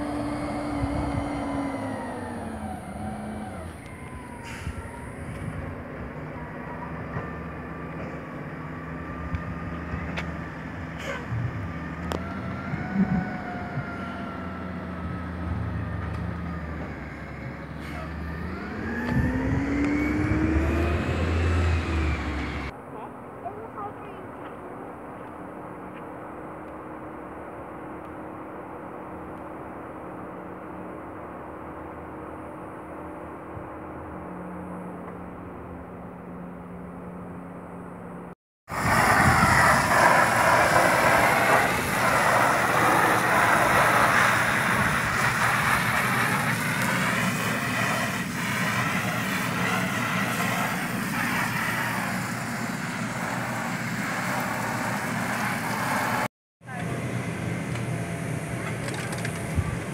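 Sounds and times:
electric blower droning: 0.0 - 5.8, 8.6 - 22.7, 38.7 - 59.9.

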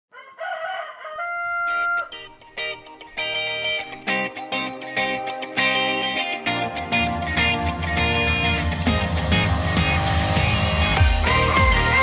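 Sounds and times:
rooster crowing: 0.1 - 2.4.

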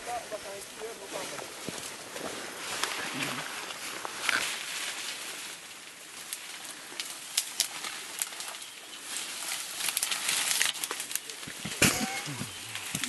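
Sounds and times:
leaves and stems rustling: 0.0 - 13.0
sharp cracks of stems: 6.1 - 13.0
bird calling: 11.7 - 13.0.

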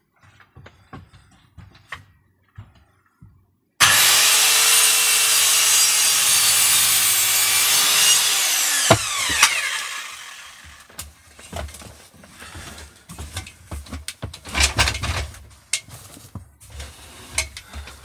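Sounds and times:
saw blade spinning down whine: 3.8 - 10.9
circular saw cutting timber: 3.8 - 11.0.

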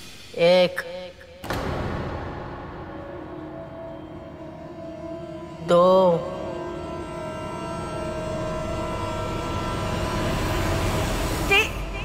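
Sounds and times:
sustained drone of held tones: 2.1 - 12.0
rushing swell: 2.3 - 12.0.

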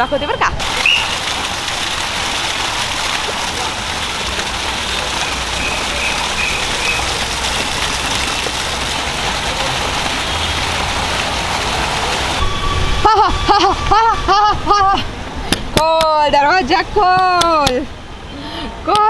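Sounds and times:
fountain water splashing: 0.1 - 15.0.

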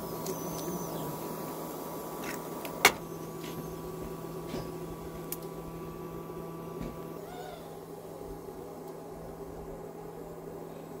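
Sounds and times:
faint rising and falling call: 7.1 - 7.9.

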